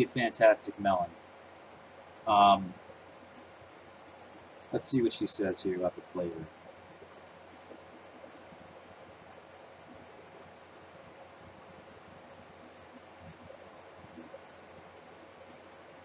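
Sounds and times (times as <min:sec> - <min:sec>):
faint room tone hiss: 0:00.0 - 0:16.0.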